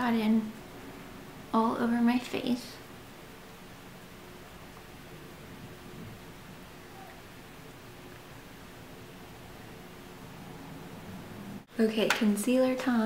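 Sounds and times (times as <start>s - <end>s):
faint hum: 0.0s - 13.0s
low steady hiss: 0.0s - 13.0s.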